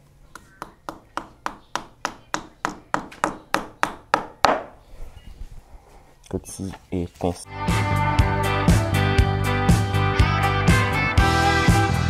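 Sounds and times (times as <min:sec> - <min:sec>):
hammer striking a nail: 0:00.6 - 0:04.7.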